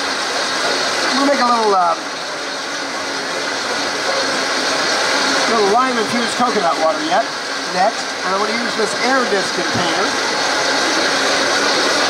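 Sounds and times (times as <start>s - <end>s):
blender whirring: 0.0s - 12.0s.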